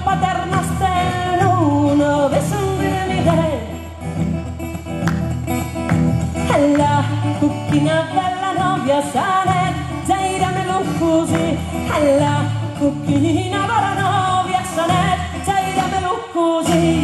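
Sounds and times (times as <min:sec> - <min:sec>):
woman singing: 0:00.0 - 0:04.0, 0:06.3 - 0:17.0
acoustic guitar: 0:00.0 - 0:17.0.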